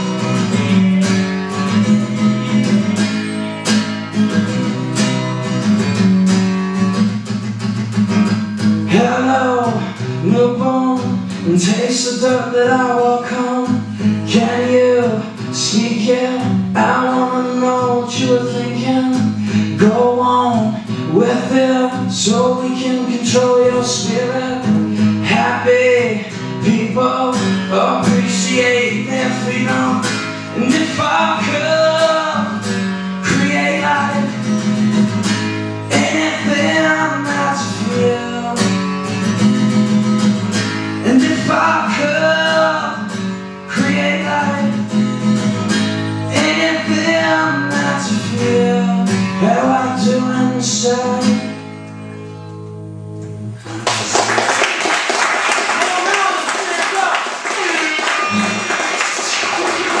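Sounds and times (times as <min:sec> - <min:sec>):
strummed acoustic guitar: 0:00.0 - 1:00.0
man singing: 0:08.8 - 0:34.5, 0:35.9 - 0:38.9, 0:41.0 - 0:45.0, 0:46.3 - 0:51.5, 0:55.9 - 1:00.0
audience applauding: 0:53.7 - 1:00.0.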